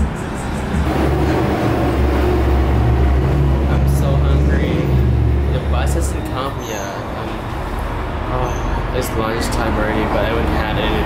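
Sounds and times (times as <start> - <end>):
large vehicle engine rumbling: 0.0 - 11.0.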